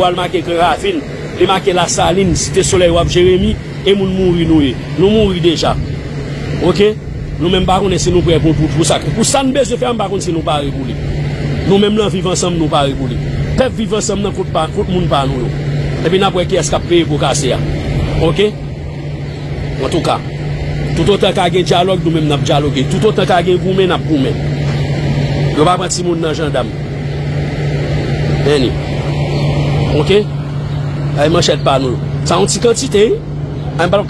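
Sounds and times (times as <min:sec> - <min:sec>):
man speaking: 0:00.0 - 0:05.9, 0:06.5 - 0:18.6, 0:19.7 - 0:24.6, 0:25.4 - 0:26.8, 0:28.3 - 0:28.9, 0:29.8 - 0:30.4, 0:31.0 - 0:34.0
steady low hum: 0:00.0 - 0:34.0.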